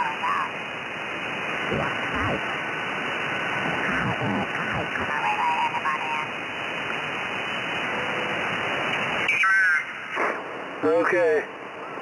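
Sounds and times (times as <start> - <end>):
garbled squeaky radio voice: 0.0 - 0.6, 1.7 - 2.5, 3.8 - 6.4, 9.3 - 10.2
radio hiss and static: 0.0 - 12.0.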